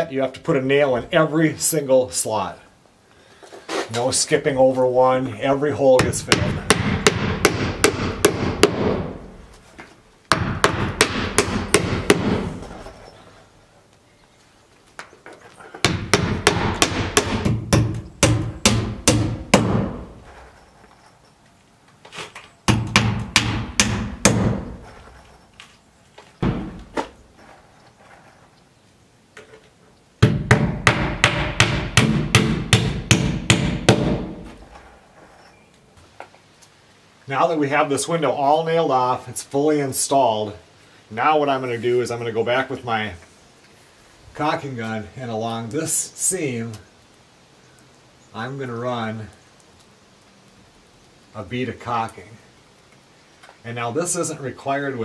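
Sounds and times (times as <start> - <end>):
hammer driving nails: 6.0 - 9.2, 10.3 - 12.7, 15.8 - 20.2, 22.7 - 24.8, 30.2 - 34.6.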